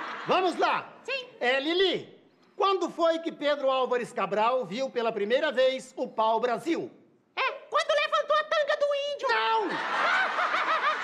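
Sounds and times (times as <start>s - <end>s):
audience laughing: 9.7s - 11.0s.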